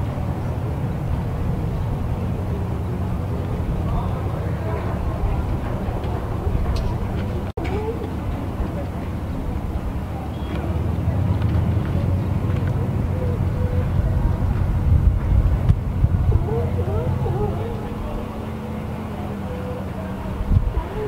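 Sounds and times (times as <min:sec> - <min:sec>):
engine idling: 0:00.0 - 0:21.0
faint voices: 0:00.0 - 0:21.0.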